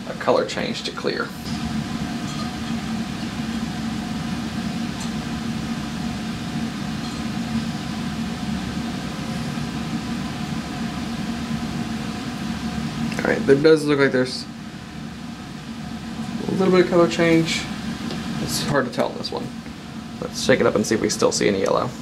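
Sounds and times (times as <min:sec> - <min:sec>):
exhaust fan drone: 0:00.0 - 0:22.0.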